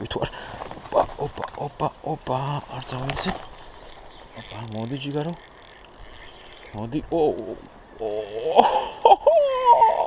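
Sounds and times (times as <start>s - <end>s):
fishing reel ratcheting and whirring: 3.4s - 8.7s, 9.4s - 10.0s.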